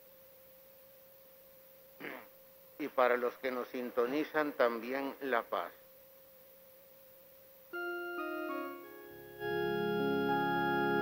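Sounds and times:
faint steady hum: 0:00.0 - 0:11.0
keyboard holding a chord: 0:07.8 - 0:11.0.

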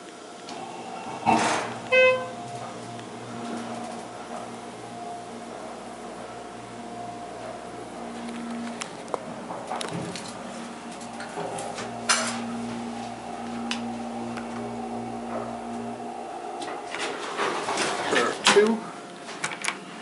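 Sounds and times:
elevator machinery humming: 0:00.0 - 0:20.0.

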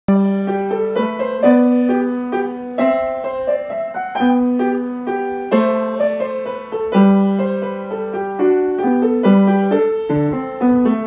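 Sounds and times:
upright piano playing minuet: 0:00.1 - 0:11.0.

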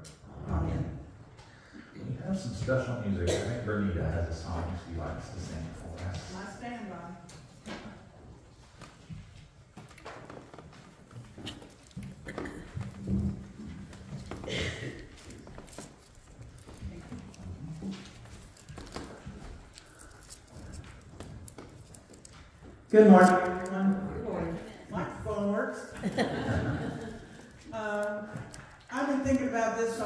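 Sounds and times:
microphone being handled: 0:08.6 - 0:23.8.

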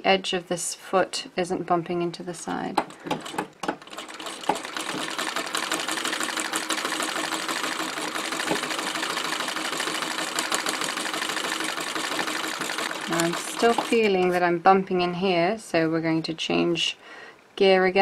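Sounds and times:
sewing machine stitching clatter: 0:02.8 - 0:14.4.

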